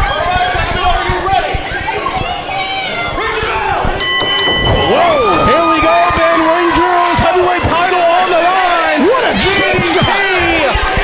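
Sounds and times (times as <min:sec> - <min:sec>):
spectators shouting: 0:00.0 - 0:11.0.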